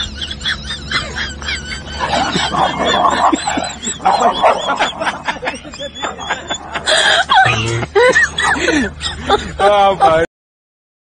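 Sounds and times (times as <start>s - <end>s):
people laughing: 0.0s - 10.3s.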